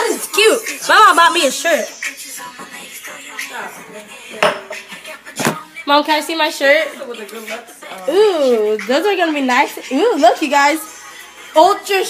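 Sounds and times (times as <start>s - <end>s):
dishes and cutlery clanking: 3.8s - 5.6s.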